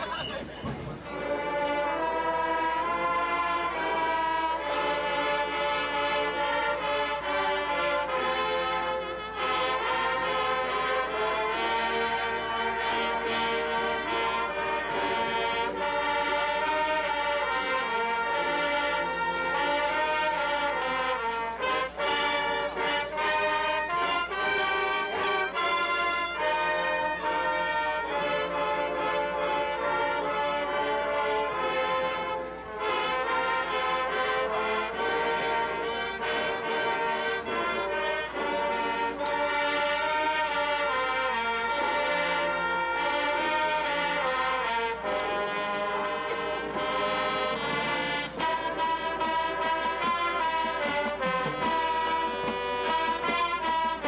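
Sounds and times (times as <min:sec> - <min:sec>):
brass marching band playing: 0:00.0 - 0:54.0.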